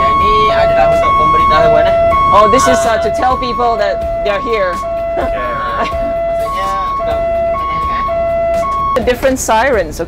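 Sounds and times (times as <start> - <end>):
fire truck two-tone siren: 0.0 - 9.0.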